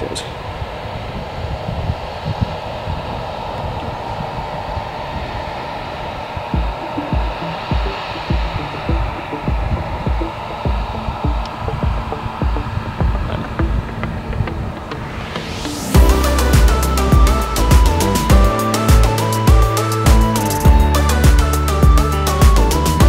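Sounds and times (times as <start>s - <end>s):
low thumps: 6.4s - 14.6s.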